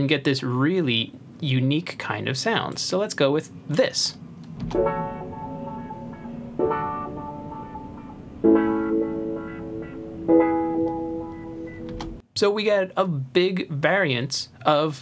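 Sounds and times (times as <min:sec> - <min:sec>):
filtered piano chords: 0:04.6 - 0:12.2.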